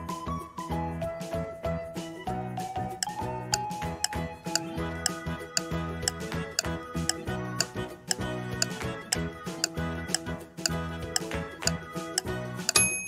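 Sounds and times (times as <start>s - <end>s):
background music: 0.0s - 13.0s
clock-like timer ticking: 3.0s - 12.8s.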